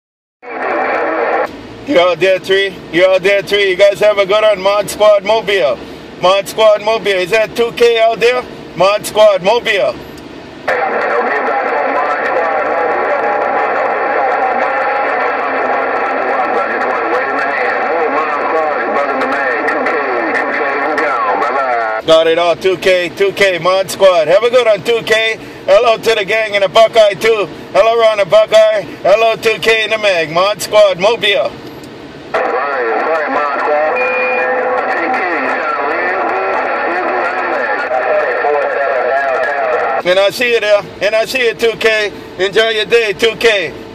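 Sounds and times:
garbled radio voices: 0:00.4 - 0:10.0, 0:10.6 - 0:31.6, 0:32.3 - 0:43.8
radio static and crackle: 0:00.5 - 0:01.5, 0:10.6 - 0:22.0, 0:32.3 - 0:40.1.

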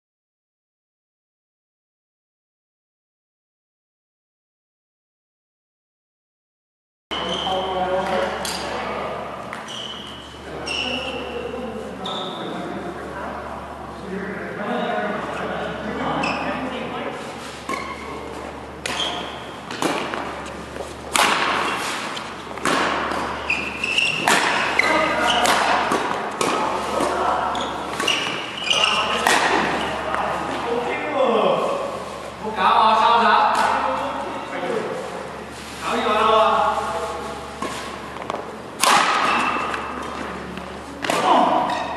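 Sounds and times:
shoes squeaking on court: 0:07.1 - 0:08.8, 0:09.4 - 0:12.7, 0:16.1 - 0:30.7, 0:39.2 - 0:41.9
voices echoing in hall: 0:07.1 - 0:41.9
rackets hitting shuttlecock: 0:08.0 - 0:08.7, 0:18.8 - 0:30.6, 0:37.6 - 0:41.9.

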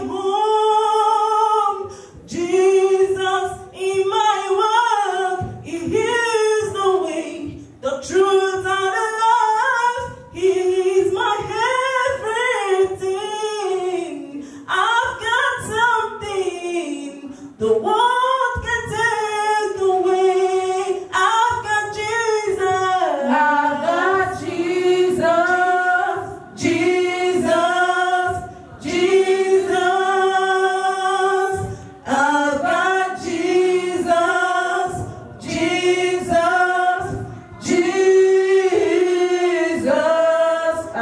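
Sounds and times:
women singing gospel unaccompanied: 0:00.0 - 0:41.0.

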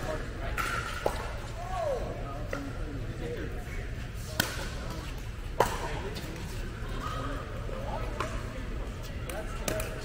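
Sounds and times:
faint chatter: 0:00.0 - 0:10.0.

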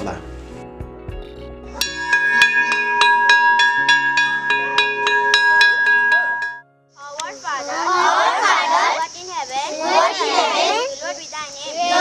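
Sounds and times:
metal plate bell beaten with stick: 0:01.8 - 0:06.6.

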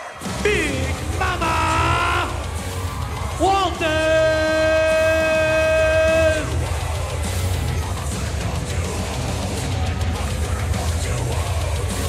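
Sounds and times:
announcer long held call: 0:00.3 - 0:02.6, 0:03.2 - 0:06.6.

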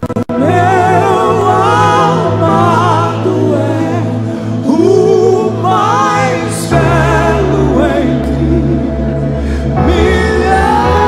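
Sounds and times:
gospel worship singing: 0:00.2 - 0:11.0.

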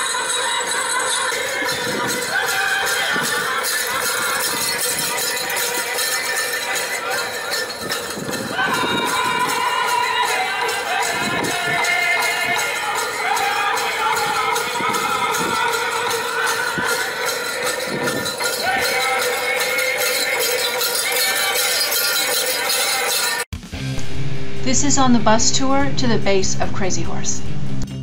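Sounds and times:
steady jingling bells: 0:00.0 - 0:23.5.

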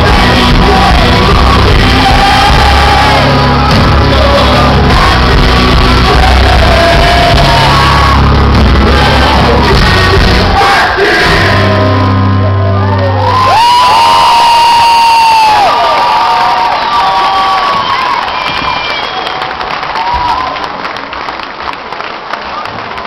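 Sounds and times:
audience cheering and whistling: 0:13.0 - 0:20.8.

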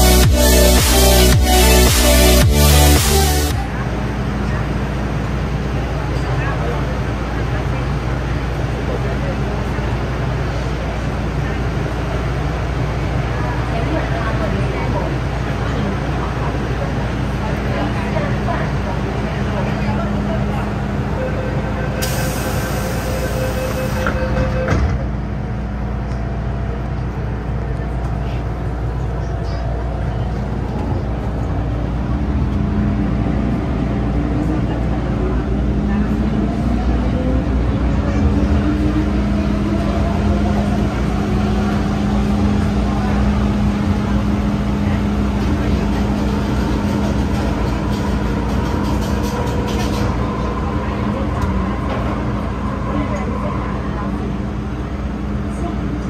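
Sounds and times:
wheels rumbling on track: 0:03.5 - 0:56.0
traction motors whining: 0:43.5 - 0:54.9.

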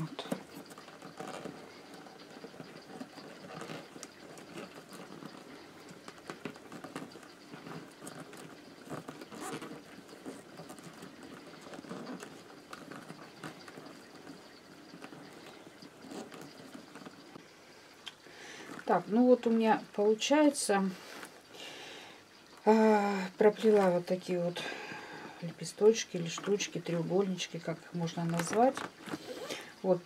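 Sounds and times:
paper tubes rustling and clicking: 0:00.0 - 0:17.4, 0:25.4 - 0:30.0.

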